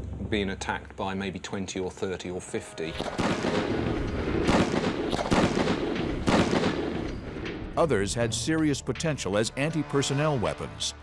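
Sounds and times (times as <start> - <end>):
loud single bangs: 3.0 - 7.8.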